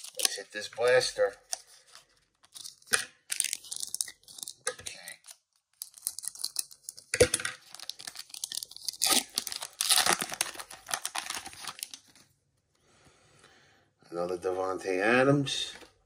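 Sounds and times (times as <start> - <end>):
foil wrapper crinkling and tearing: 0.0 - 12.2.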